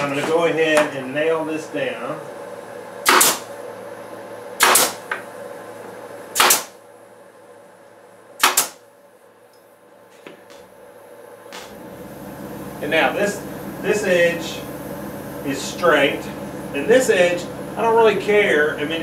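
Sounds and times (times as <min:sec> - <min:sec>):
nail gun firing: 0:03.0 - 0:03.5, 0:04.6 - 0:05.2, 0:06.4 - 0:06.8, 0:08.4 - 0:08.8.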